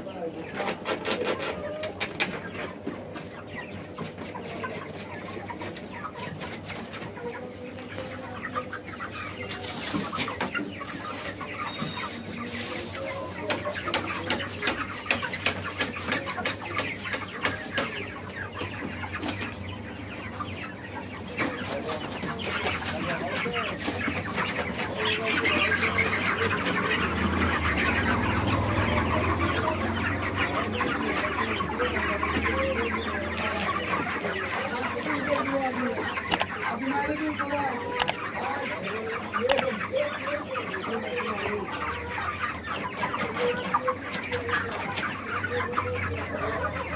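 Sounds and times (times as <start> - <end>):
chickens clucking: 0.0 - 46.9.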